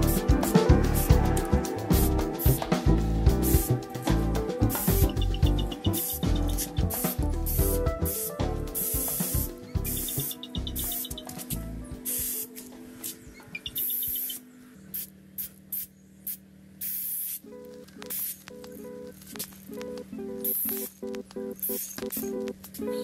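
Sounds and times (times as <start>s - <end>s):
background music with a beat: 0.0s - 12.4s
spray paint can hissing: 0.0s - 12.6s, 13.8s - 17.4s, 18.1s - 18.4s.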